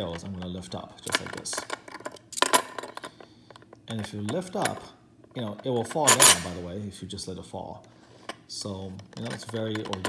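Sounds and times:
metal puzzle pieces clinking: 1.1 - 3.2, 5.9 - 6.6.

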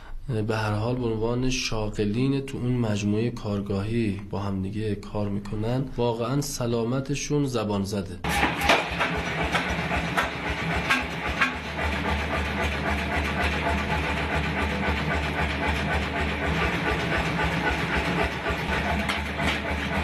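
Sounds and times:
electric fan motor humming: 8.2 - 20.0.

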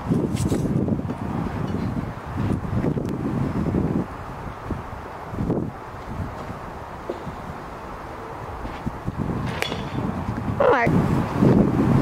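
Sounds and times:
baseball bat striking ball: 7.0 - 7.4, 9.4 - 10.2.

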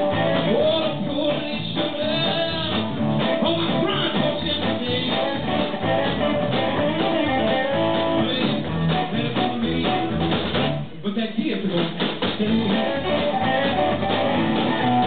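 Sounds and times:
electric guitar: 0.0 - 10.9, 12.2 - 15.0
drum kit: 0.0 - 11.0, 11.6 - 15.0.

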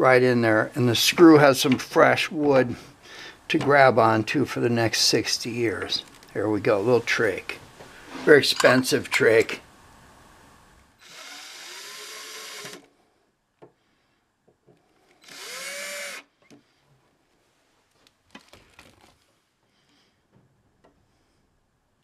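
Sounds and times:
cordless drill whine: 11.0 - 12.9, 15.2 - 16.3.

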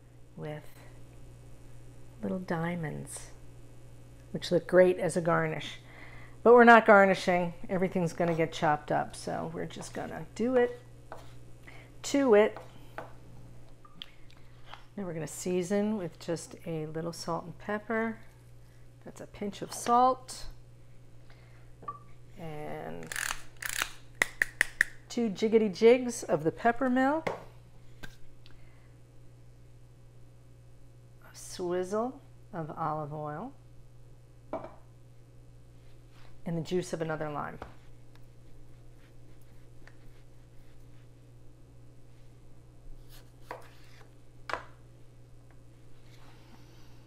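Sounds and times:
pepper mill grinding: 23.0 - 24.0
knife cutting lime on board: 43.1 - 44.1.

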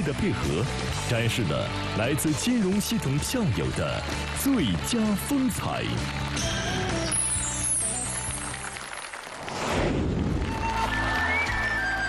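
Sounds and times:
backing music: 0.0 - 8.9.

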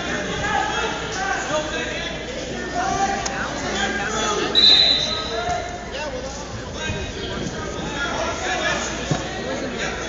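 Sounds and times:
voices echoing in gym hall: 0.0 - 10.0.

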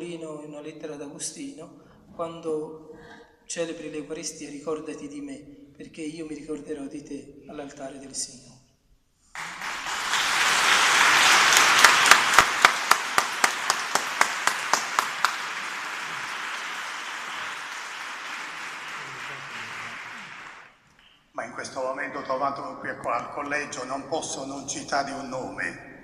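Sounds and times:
loud close single claps: 9.4 - 20.7
congregation applauding: 9.4 - 20.8.

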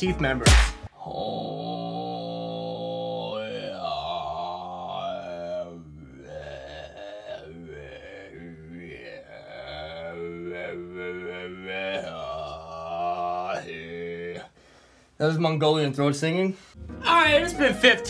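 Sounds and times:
man throat singing: 0.9 - 14.6.

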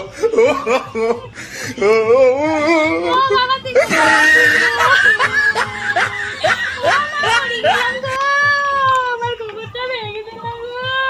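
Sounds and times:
woman wailing and sobbing: 0.0 - 9.2.

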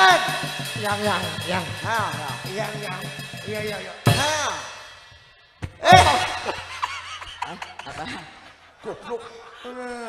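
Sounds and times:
short loud eh: 0.0 - 6.6
man crying out through microphone: 5.8 - 6.6.

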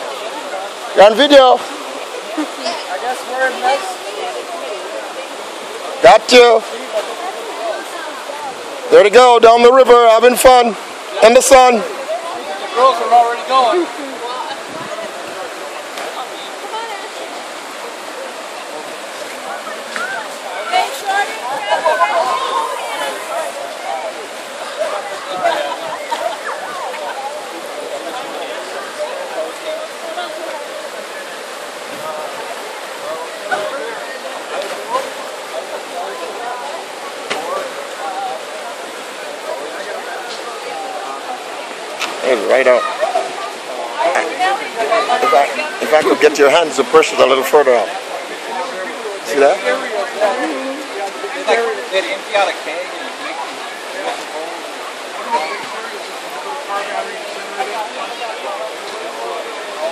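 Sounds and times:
river rushing over rocks: 0.0 - 59.9.

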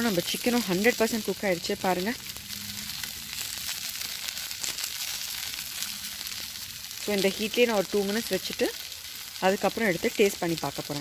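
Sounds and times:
chicken sizzling on a grill: 0.0 - 11.0.

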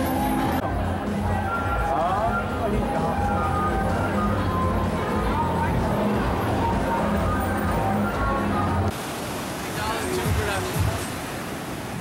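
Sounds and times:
music with voices: 0.0 - 8.9
ocean surf breaking: 8.9 - 12.0.

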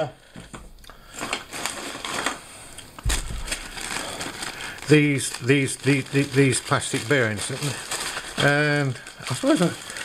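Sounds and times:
plastic bag crinkling: 0.2 - 10.0
dull low bump: 3.0 - 3.8.

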